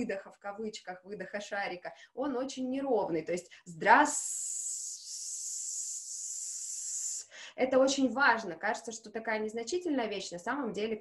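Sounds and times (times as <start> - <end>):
woman's drawn-out hiss: 4.0 - 7.5.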